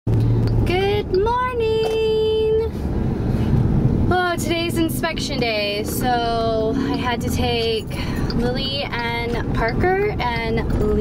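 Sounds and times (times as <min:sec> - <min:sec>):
car road and engine rumble: 0:00.1 - 0:11.0.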